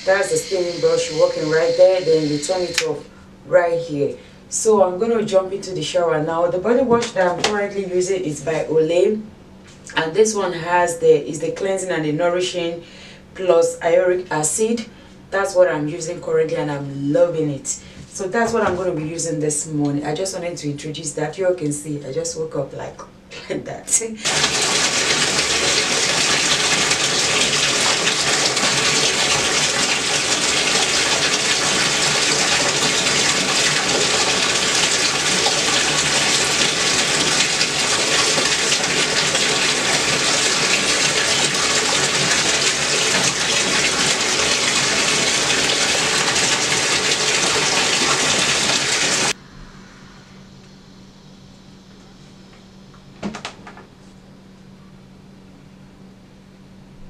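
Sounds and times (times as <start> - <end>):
shower spray hissing: 0.0 - 3.0, 24.2 - 50.4
faint steady hum: 0.0 - 48.6, 49.3 - 57.0.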